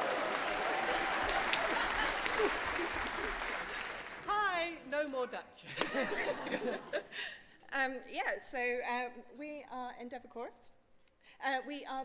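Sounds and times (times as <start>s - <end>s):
audience applauding: 0.0s - 4.7s.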